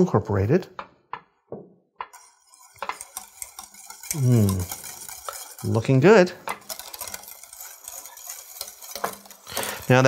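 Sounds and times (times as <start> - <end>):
whisk scraping metal pot: 2.0 - 10.0.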